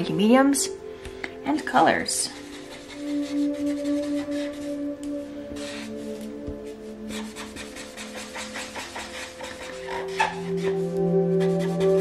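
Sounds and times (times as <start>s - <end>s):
marker scratching on paper: 2.4s - 4.7s, 5.6s - 6.3s, 7.1s - 12.0s.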